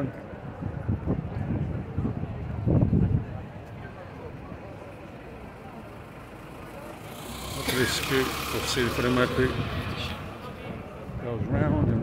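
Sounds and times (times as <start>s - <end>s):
traffic hum: 0.0s - 12.0s
people talking: 6.6s - 12.0s.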